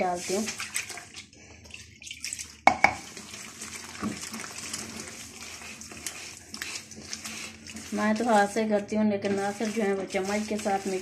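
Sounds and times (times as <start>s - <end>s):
hand stirring wet batter: 0.0s - 11.0s.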